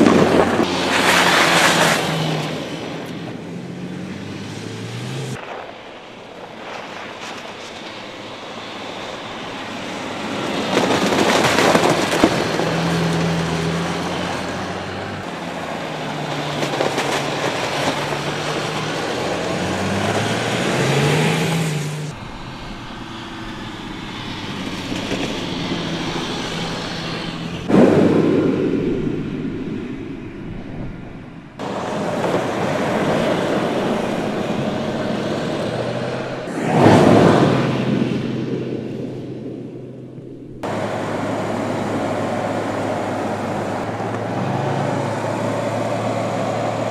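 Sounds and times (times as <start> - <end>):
car engine revving: 0.0 - 5.5, 10.0 - 46.9.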